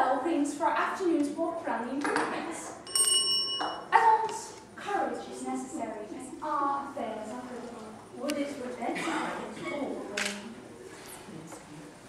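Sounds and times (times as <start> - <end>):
bell ringing: 2.8 - 3.9
voices: 3.6 - 11.9.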